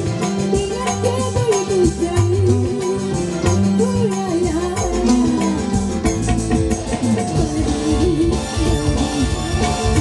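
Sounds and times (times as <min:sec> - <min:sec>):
drums beating: 0:00.0 - 0:10.0
electric keyboard: 0:00.0 - 0:10.0.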